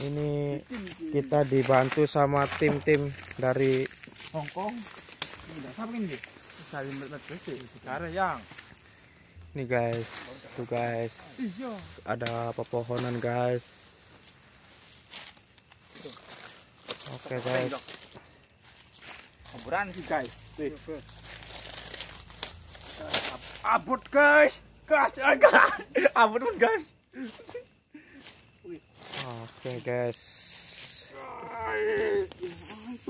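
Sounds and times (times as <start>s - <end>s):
people talking: 0.0s - 8.5s, 9.6s - 13.8s, 17.1s - 18.0s, 19.5s - 21.0s, 23.0s - 27.6s, 28.6s - 33.0s
rustling and crinkling: 0.0s - 25.8s, 27.2s - 30.0s, 30.6s - 33.0s.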